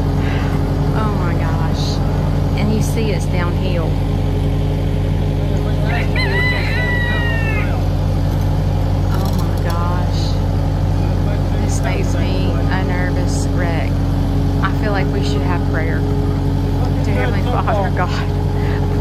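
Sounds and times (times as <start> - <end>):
track loader diesel engine running: 0.0 - 19.0
rooster crowing: 5.7 - 8.0.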